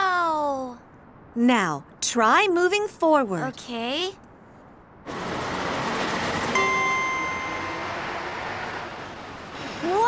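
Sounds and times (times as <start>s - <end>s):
steady rushing noise: 4.5s - 10.0s.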